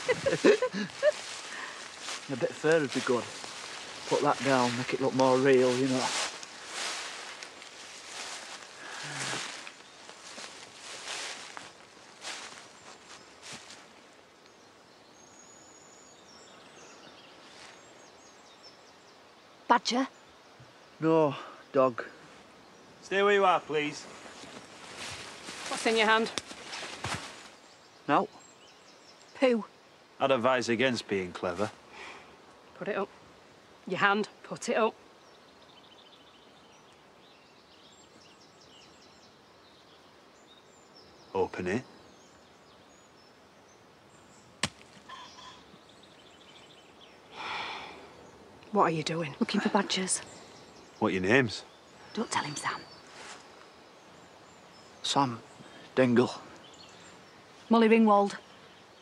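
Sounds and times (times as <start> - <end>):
rustling of leaf litter: 0.0 - 14.2, 17.2 - 18.0, 23.4 - 27.8, 52.9 - 54.9
faint outdoor hiss: 0.0 - 59.0
small birds chirping: 0.0 - 59.0
faint high bird chirps: 33.8 - 59.0.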